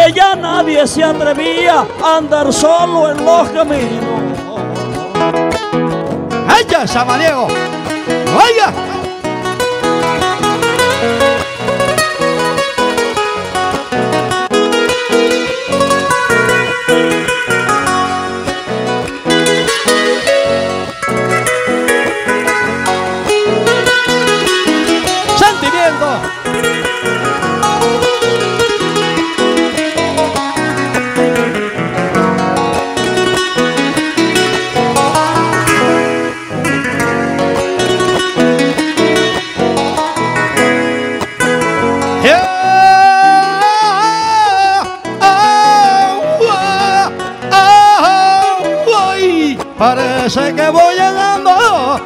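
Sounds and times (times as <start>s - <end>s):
acoustic guitars strumming: 0.0s - 52.0s
man singing long notes: 42.1s - 52.0s.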